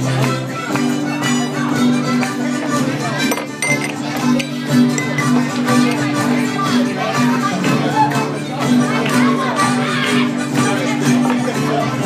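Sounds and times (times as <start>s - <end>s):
acoustic guitar strumming: 0.0s - 12.0s
harmonica melody: 0.1s - 7.5s.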